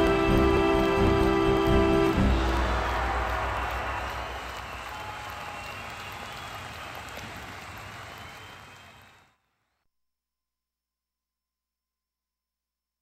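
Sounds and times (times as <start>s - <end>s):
crowd applause: 0.0s - 9.4s.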